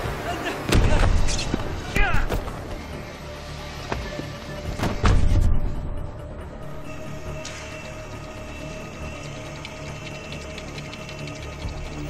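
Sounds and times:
film music: 0.0 - 12.0.

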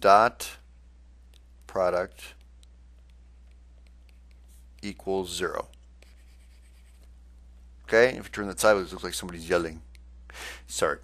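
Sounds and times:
steady low hum: 0.0 - 11.0
stylus scratching on a tablet: 3.8 - 4.8, 5.4 - 7.2.

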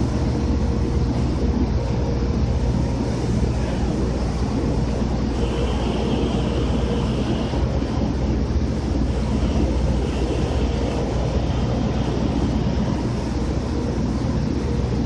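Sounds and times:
faint high whine: 0.0 - 15.0
heavy machinery droning: 0.0 - 15.0.

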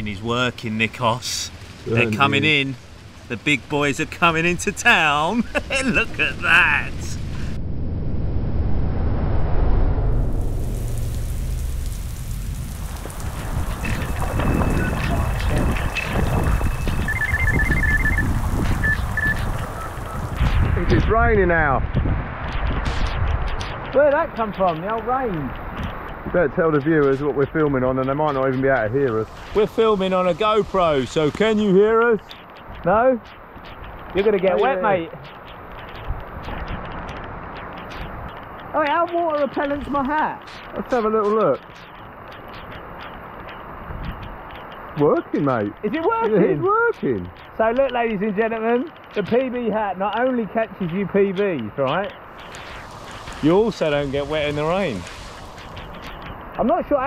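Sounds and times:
heavy rain on a lake: 0.0 - 7.6, 10.2 - 57.0
low rumble: 5.4 - 24.6
short high beeps: 16.5 - 20.2.

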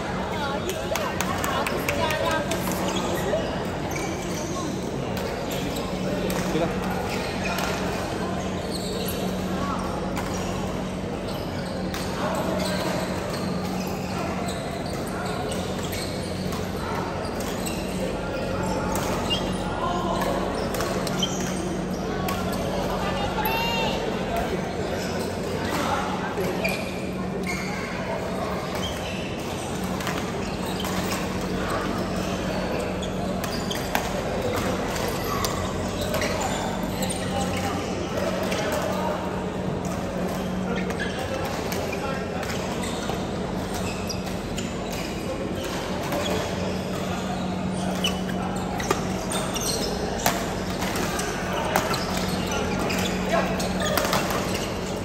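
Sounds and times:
players' voices: 0.0 - 55.0.

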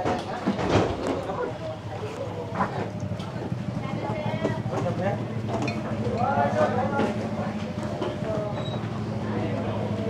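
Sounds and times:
low mechanical hum: 0.0 - 10.0
people talking: 0.0 - 10.0.

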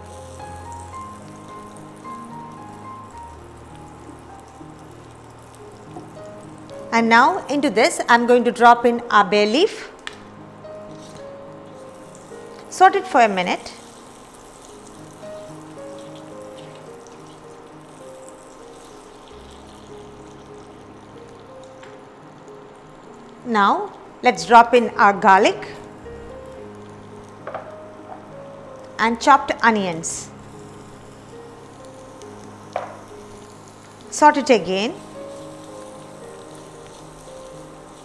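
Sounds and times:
butter sizzling in a pot: 0.0 - 38.0
soft slow background music: 0.0 - 38.0.

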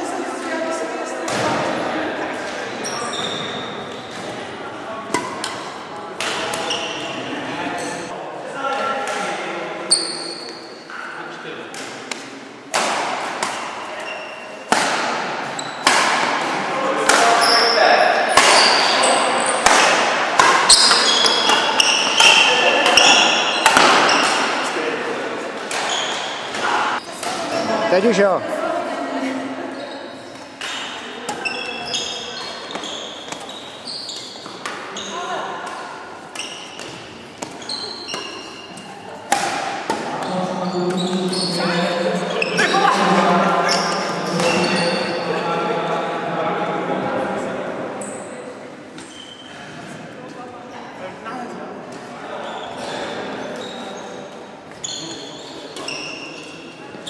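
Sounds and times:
background chatter of voices: 0.0 - 57.0
shoes squeaking on wooden floor: 2.8 - 4.3, 20.7 - 24.4, 25.8 - 26.8, 31.4 - 35.4, 36.4 - 39.0, 40.1 - 45.2, 52.4 - 57.0
rackets hitting shuttlecocks: 14.7 - 17.4, 18.3 - 19.0, 19.6 - 24.6, 35.6 - 40.3.

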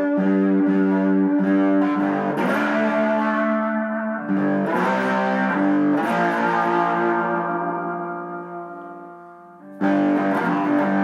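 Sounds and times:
slide guitar chord ringing: 0.0 - 11.0.

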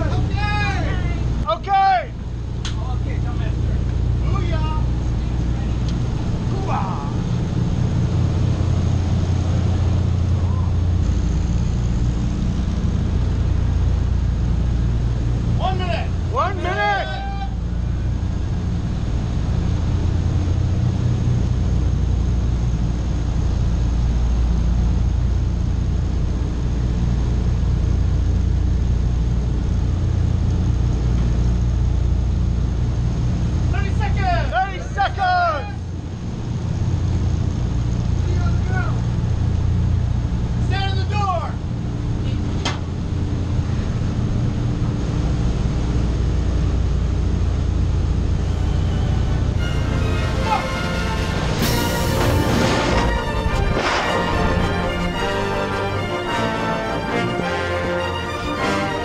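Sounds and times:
slipstream rushing: 0.0 - 28.8, 45.1 - 59.0
aircraft piston engines droning: 0.0 - 59.0
person shouting: 6.6 - 7.2, 16.6 - 17.6.

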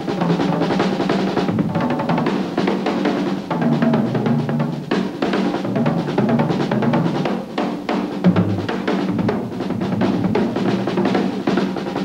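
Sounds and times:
drum kit playing fast: 0.0 - 12.0.

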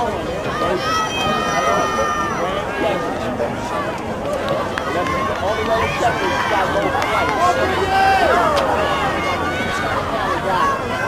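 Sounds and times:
crowd talking and calling out: 0.0 - 11.0.

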